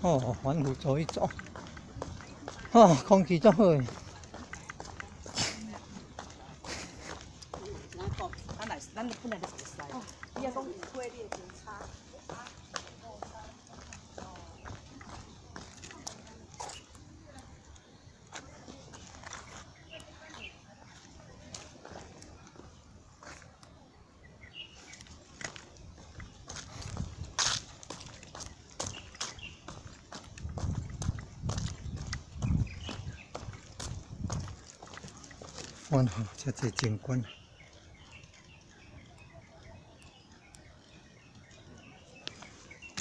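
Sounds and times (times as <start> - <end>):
faint distant voices: 0.0 - 43.0
footsteps on paved walkway: 0.0 - 43.0.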